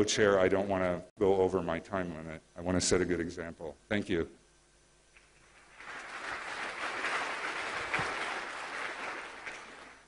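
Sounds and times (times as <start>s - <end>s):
audience applauding: 5.4s - 10.0s.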